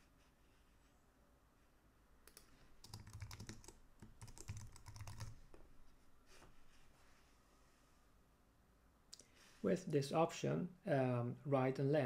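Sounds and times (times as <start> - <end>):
typing on computer keyboard: 2.3 - 5.4.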